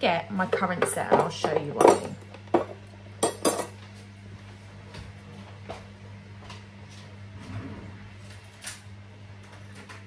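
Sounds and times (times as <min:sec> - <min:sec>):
metal cutlery clinking on table: 0:01.1 - 0:02.2, 0:03.2 - 0:03.8.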